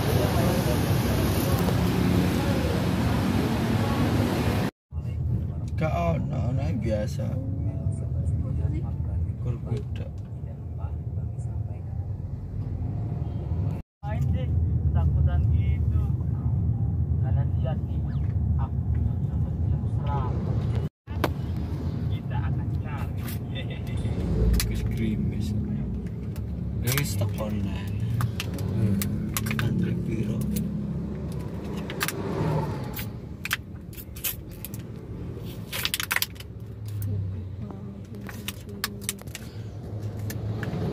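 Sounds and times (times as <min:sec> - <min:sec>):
bus passing close: 0:00.0 - 0:04.7
car engine and tyres rumbling: 0:00.0 - 0:40.9.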